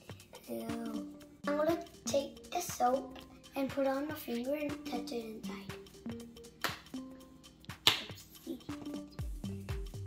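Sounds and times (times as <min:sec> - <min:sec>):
background music with soft held notes: 0:00.0 - 0:10.0.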